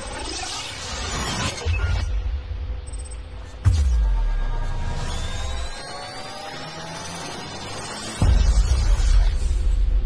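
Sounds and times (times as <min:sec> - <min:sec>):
cinematic music rising tones: 0:01.4 - 0:10.0.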